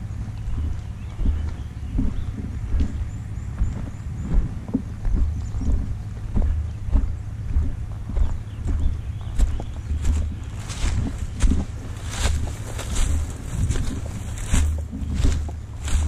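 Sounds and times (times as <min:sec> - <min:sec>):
footsteps on dirt trail: 0:00.0 - 0:16.0
wind rumble on microphone: 0:00.0 - 0:16.0.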